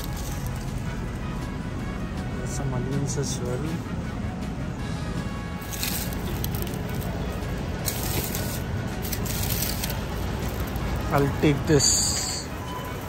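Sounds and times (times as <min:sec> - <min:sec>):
mesh bag rustling: 0:00.0 - 0:00.8, 0:05.6 - 0:07.2, 0:07.8 - 0:10.9
background music: 0:00.0 - 0:13.0
supermarket hubbub: 0:00.0 - 0:13.0.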